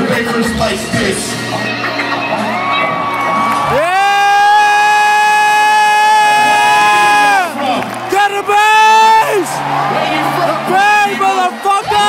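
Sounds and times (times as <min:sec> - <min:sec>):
concert crowd cheering: 0:01.5 - 0:12.0.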